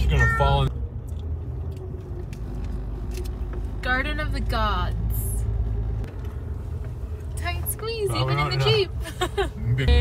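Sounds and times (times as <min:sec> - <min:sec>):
car engine rumble: 0:00.0 - 0:10.0
tyres on road: 0:00.0 - 0:10.0.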